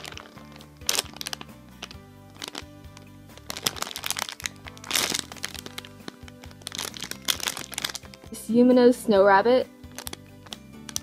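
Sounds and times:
plastic bag crinkling: 0.0 - 8.3, 9.9 - 11.0
background music with held notes: 0.0 - 11.0.

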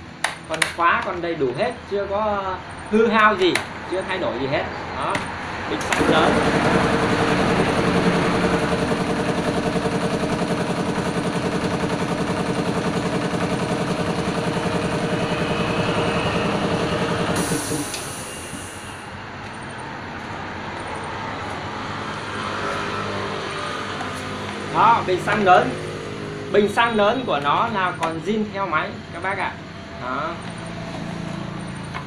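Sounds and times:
large engine throbbing: 5.8 - 19.2
short hiss: 17.4 - 19.0.

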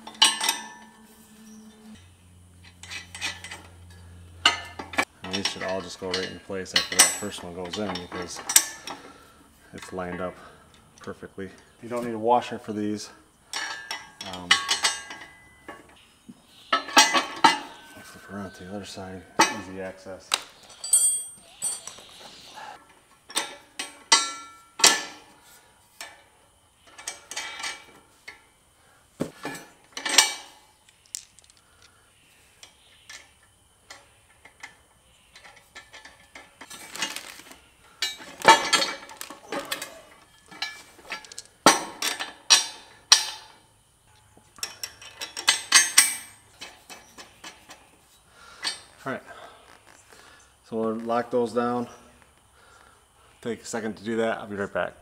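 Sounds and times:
steel parts clanking: 0.0 - 9.2, 13.5 - 16.0, 16.7 - 25.3, 26.0 - 28.4, 29.4 - 31.6, 33.9 - 49.0.

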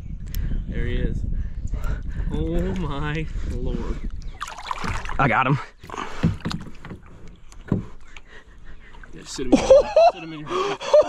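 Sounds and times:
fish knocking against kayak hull: 4.4 - 5.2, 5.8 - 8.3.

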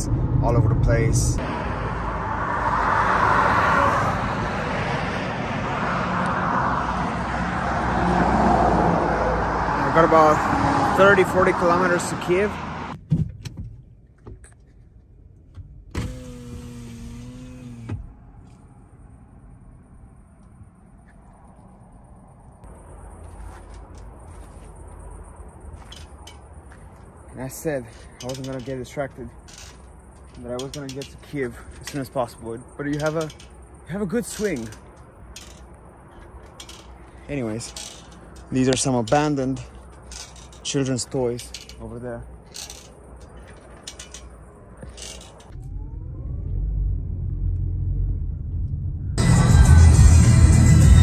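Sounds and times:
faint low rumble: 0.0 - 2.2, 44.7 - 49.2
electric window motor hum: 16.0 - 18.0
metal swing hangers creaking: 22.7 - 45.6.

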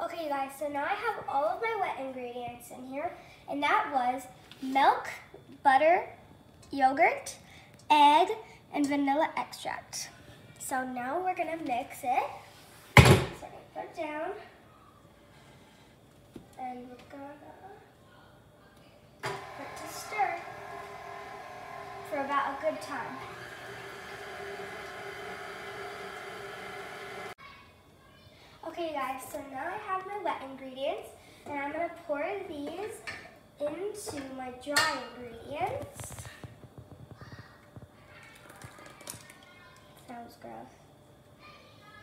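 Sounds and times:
stand mixer motor whining: 19.2 - 27.4
person speaking: 19.4 - 21.0.

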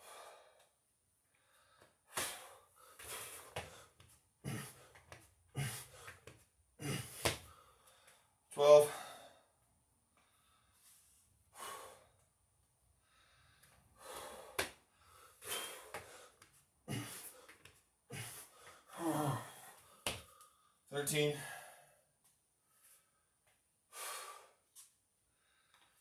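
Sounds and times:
man breathing hard: 0.0 - 12.4, 13.0 - 26.0
thumps on exercise mat: 7.1 - 7.5.

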